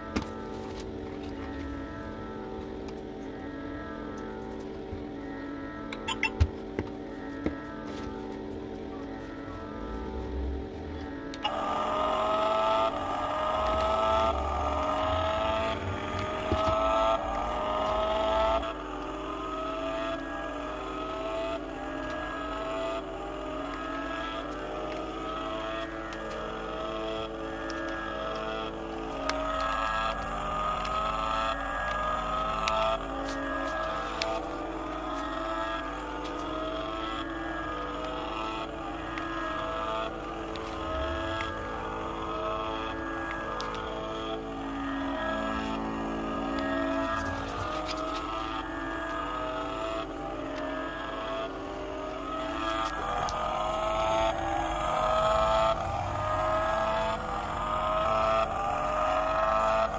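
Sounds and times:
synthetic revving whine: 0.0 - 59.9.

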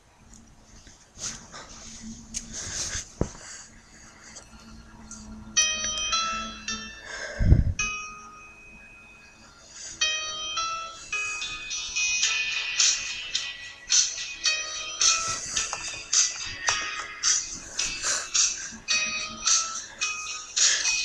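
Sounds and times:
karaoke instrumental backing track: 11.0 - 21.0.

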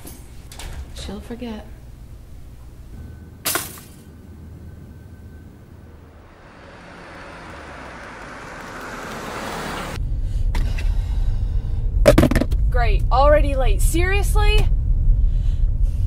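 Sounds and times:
car engine and road noise: 4.1 - 16.0.

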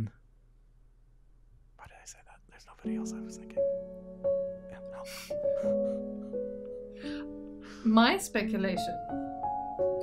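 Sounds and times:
person speaking: 1.8 - 3.7, 4.7 - 6.1
person whispering: 1.8 - 3.7, 4.7 - 5.4.

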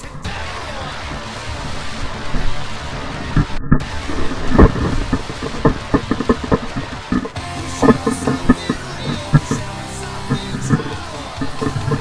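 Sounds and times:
music: 0.0 - 12.0
wind and tyre rumble: 1.6 - 7.4.

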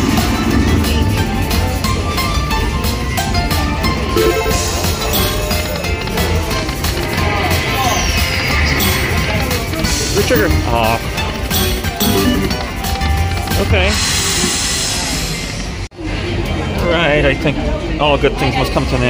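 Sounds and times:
slot machine reel sounds: 4.2 - 5.9, 8.6 - 9.4, 10.0 - 12.8
slot machine bonus music: 4.2 - 6.0, 11.5 - 12.7.

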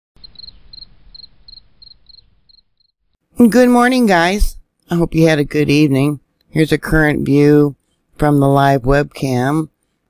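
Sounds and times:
cricket chirping: 0.2 - 2.9.

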